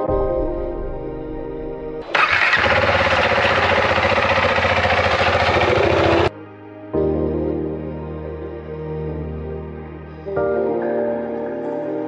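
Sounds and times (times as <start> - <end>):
motorcycle engine starting: 2.0 - 6.3.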